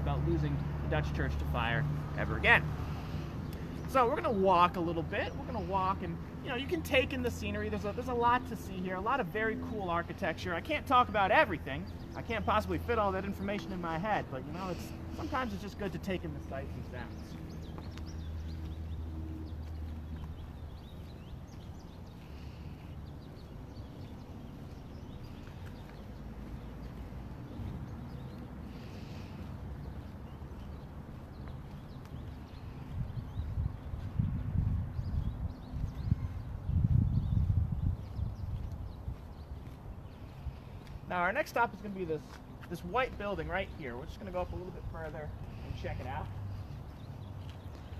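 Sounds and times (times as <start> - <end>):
faint footsteps: 1.6 - 47.9.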